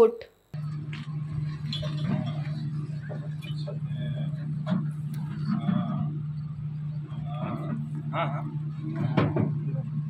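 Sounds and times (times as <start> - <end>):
steady low hum: 0.4 - 10.0
indistinct voices talking: 0.6 - 10.0.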